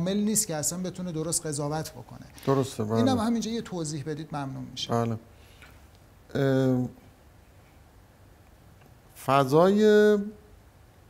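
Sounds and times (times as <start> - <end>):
man making hesitation sound: 2.9 - 3.3.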